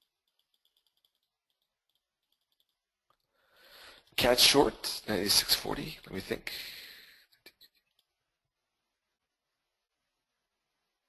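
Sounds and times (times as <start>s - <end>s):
computer mouse clicks: 0.0s - 3.3s.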